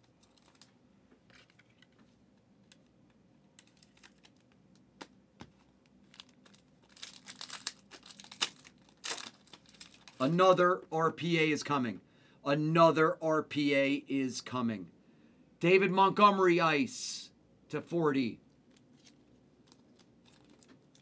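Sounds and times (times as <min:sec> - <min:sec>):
foil wrapper tearing and crinkling: 0:03.6 - 0:04.5, 0:06.0 - 0:10.3, 0:19.0 - 0:21.0.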